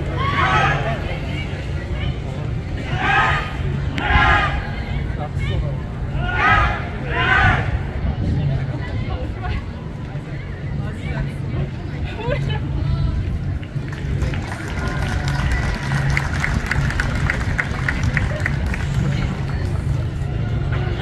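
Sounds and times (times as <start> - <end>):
outdoor crowd chatter: 0.0 - 21.0.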